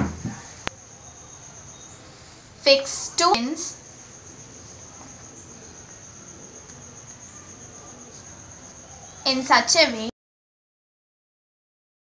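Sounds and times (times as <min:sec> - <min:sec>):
low room noise: 0:00.0 - 0:10.1.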